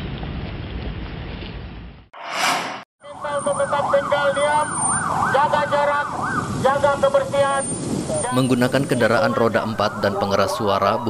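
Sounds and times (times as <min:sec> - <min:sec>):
rushing burst of noise: 0:02.2 - 0:02.9
vehicle siren wailing: 0:03.1 - 0:07.4, 0:08.9 - 0:11.0.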